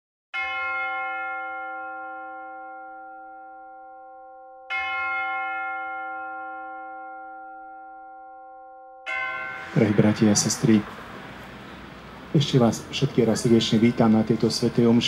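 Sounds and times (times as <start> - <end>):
bell ringing: 0.4 - 11.8, 13.0 - 15.0.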